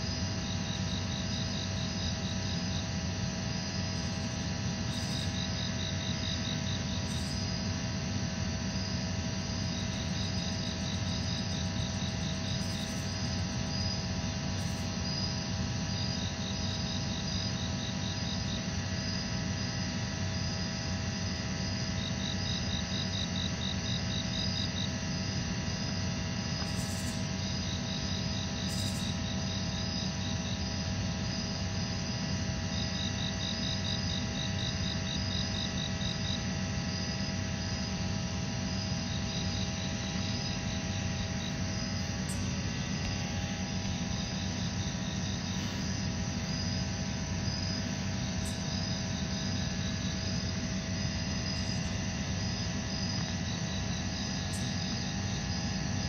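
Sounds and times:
insects trilling: 0.0 - 56.0.

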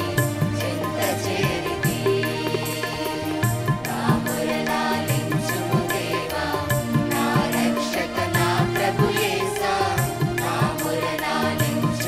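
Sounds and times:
mixed choir singing: 0.0 - 12.0
steady drum beat: 0.0 - 12.0
sustained instrumental notes: 0.0 - 12.0.

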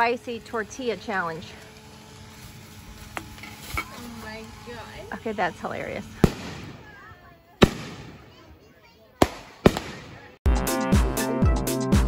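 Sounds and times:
firework bangs: 6.1 - 8.5, 9.2 - 10.4
music with a steady beat: 10.5 - 12.0.

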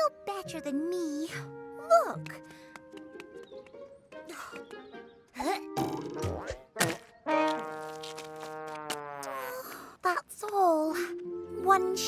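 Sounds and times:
soft background music: 0.0 - 6.6, 10.6 - 12.0.

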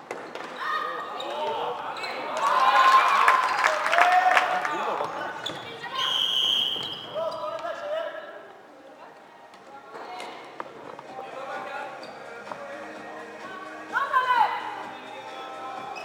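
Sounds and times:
referee's whistle: 5.5 - 7.2.

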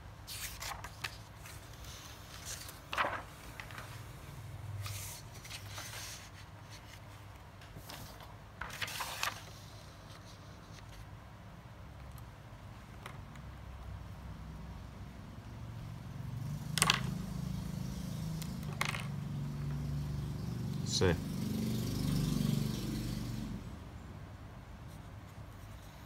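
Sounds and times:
low rumble of passing vehicle: 14.0 - 24.6.

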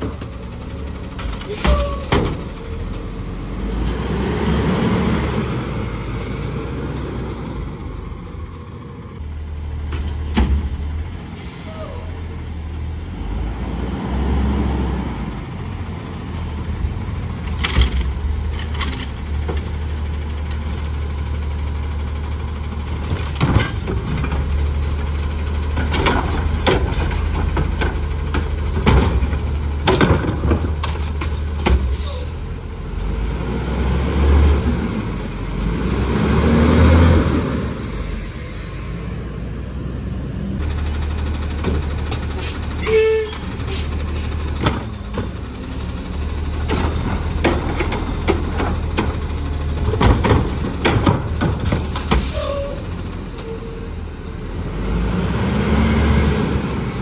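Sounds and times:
diesel truck engine running: 0.0 - 57.0
air brake hiss: 11.4 - 12.0, 31.9 - 32.3
metal clanks and knocks: 23.0 - 24.5, 25.7 - 32.0, 46.6 - 52.4.

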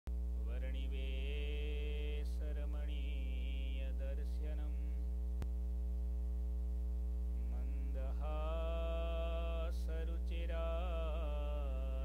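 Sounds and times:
electrical mains hum: 0.1 - 12.0
man chanting: 0.4 - 5.0, 7.4 - 12.0.

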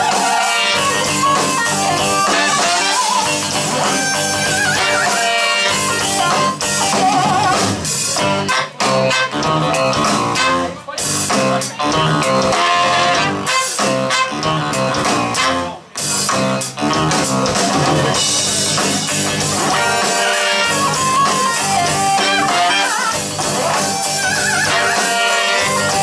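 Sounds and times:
drums: 0.0 - 26.0
electric guitar: 0.0 - 26.0
horn section: 0.0 - 26.0
keyboard: 0.0 - 26.0.

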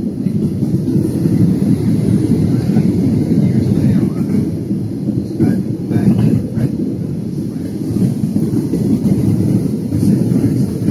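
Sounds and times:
jet engine rumble in cabin: 0.0 - 10.9.

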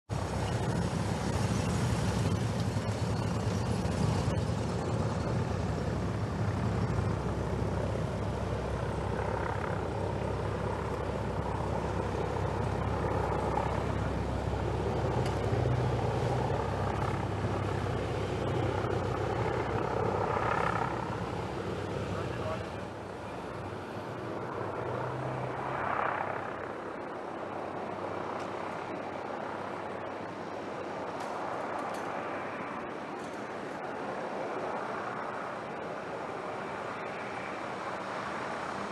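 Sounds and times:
vehicles driving past: 0.1 - 26.8.

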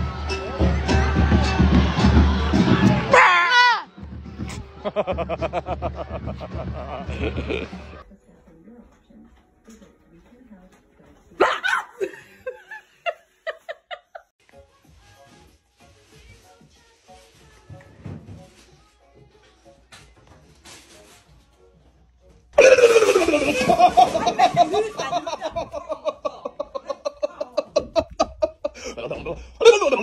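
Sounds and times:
person laughing: 4.8 - 8.0, 22.6 - 30.0.

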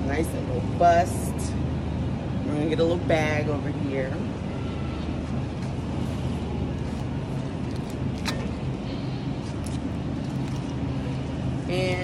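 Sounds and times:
refrigeration hum: 0.0 - 12.0
plastic bag crinkling: 9.4 - 10.8.

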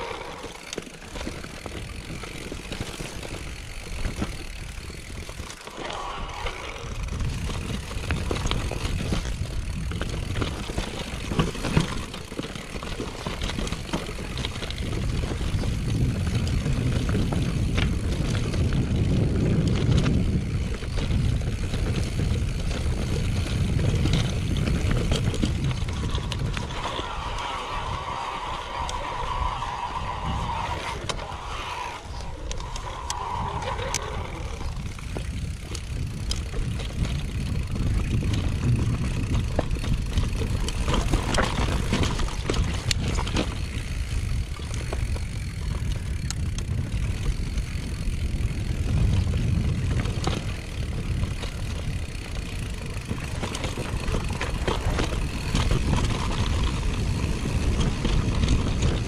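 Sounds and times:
tyres rolling over stones: 0.0 - 46.0, 48.9 - 59.0
bike rattling and clicking: 0.0 - 59.0
wind buffeting microphone: 1.1 - 59.0.

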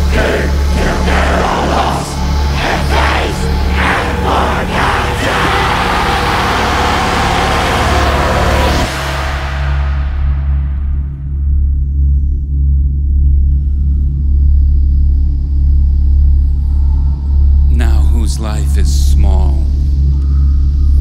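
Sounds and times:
choir singing: 0.0 - 10.0
steady deep drone: 0.0 - 21.0.

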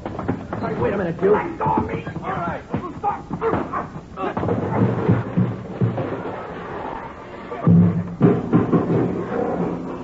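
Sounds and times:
men shouting and struggling: 0.5 - 5.4.

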